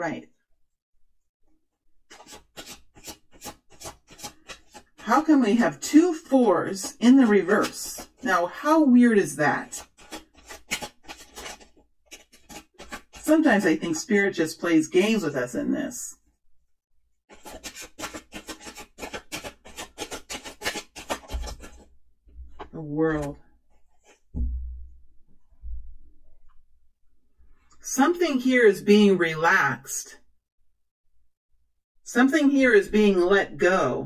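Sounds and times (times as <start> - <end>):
cards being shuffled: 2.1 - 5.0, 6.8 - 8.2, 9.7 - 14.1, 17.3 - 21.9.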